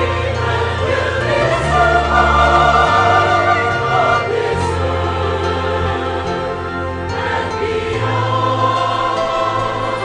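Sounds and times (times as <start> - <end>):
instrumental accompaniment: 0.0 - 10.0
mixed choir singing: 0.0 - 10.0.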